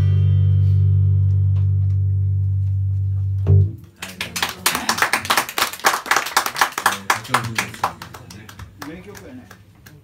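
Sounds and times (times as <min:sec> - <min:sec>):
acoustic and bass guitar chord: 0:00.0 - 0:03.8
audience applause: 0:04.0 - 0:10.0.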